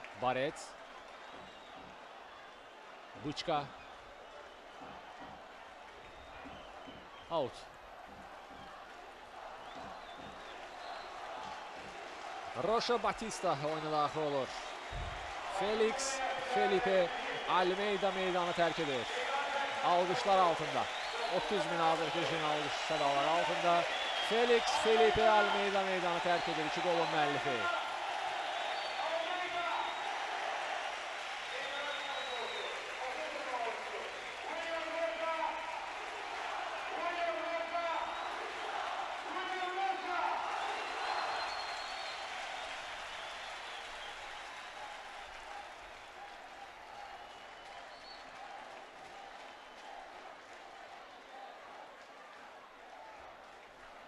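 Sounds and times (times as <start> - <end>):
stadium crowd applauding and cheering: 0.0 - 54.0.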